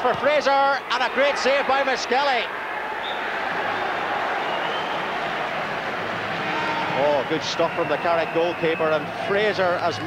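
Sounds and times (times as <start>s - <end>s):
football crowd reacting: 0.0s - 10.0s.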